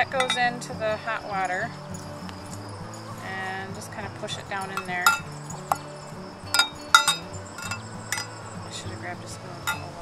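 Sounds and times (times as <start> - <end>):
metal cup clinking against glass: 0.0 - 0.7, 4.5 - 8.6, 9.6 - 10.0.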